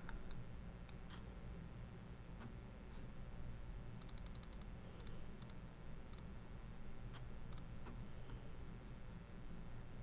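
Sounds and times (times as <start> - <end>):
computer mouse clicks: 0.0 - 1.2, 4.0 - 6.3, 7.2 - 8.0
faint room hum: 0.0 - 10.0.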